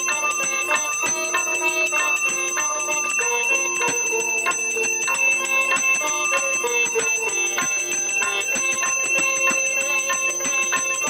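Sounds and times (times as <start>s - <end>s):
bells ringing rapidly: 0.0s - 11.0s.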